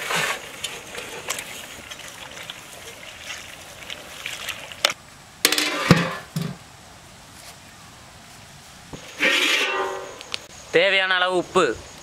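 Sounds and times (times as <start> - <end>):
crackling wood fire: 0.0 - 5.2
metallic ringing: 9.2 - 10.4.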